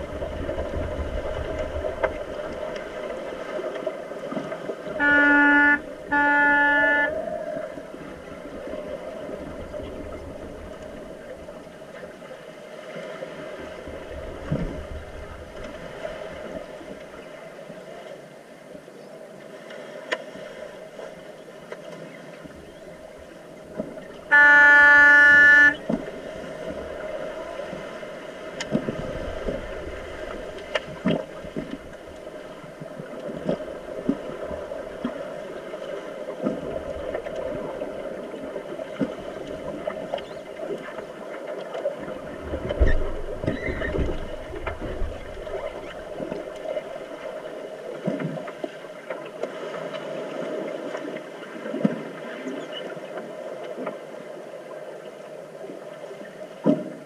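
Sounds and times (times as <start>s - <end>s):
underwater rush and bubbling: 0.0s - 17.5s, 22.4s - 55.0s
underwater signal horn blasts: 4.8s - 8.2s, 24.2s - 26.1s.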